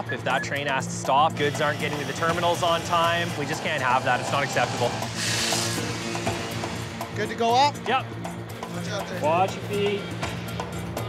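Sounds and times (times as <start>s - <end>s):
background music: 0.0s - 11.0s
cut-off saw grinding steel: 1.3s - 7.4s.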